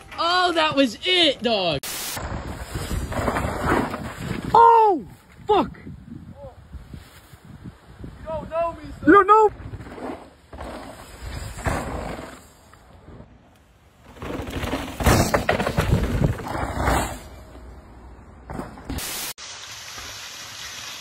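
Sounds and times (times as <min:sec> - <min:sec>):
bike tyres skidding through dirt: 0:02.1 - 0:04.7, 0:09.5 - 0:13.2, 0:13.9 - 0:17.6.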